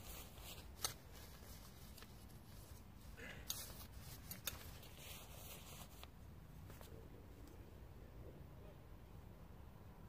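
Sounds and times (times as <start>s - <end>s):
tarp fabric rustling: 0.0s - 6.1s.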